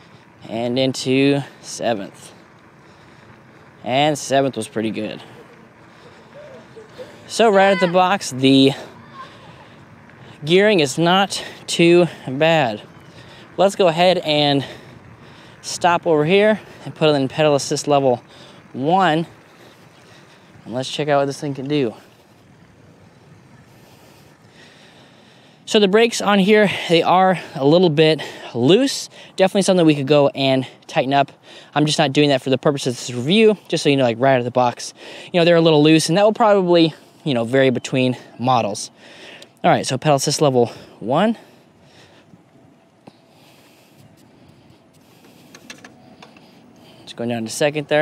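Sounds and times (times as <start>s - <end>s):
bike tyres rolling on dirt trail: 0.0s - 48.0s.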